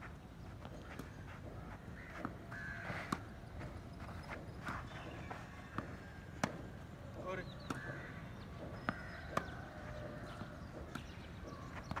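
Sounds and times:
tennis ball bouncing: 0:00.6 - 0:12.0.

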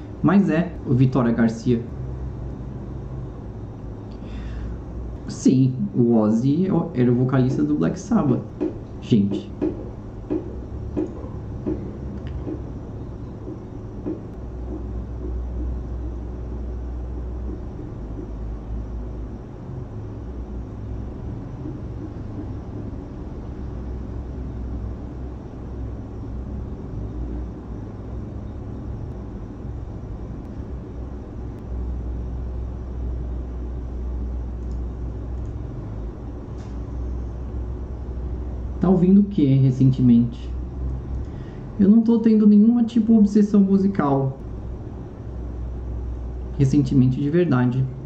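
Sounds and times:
low rumble: 0:00.0 - 0:48.0.

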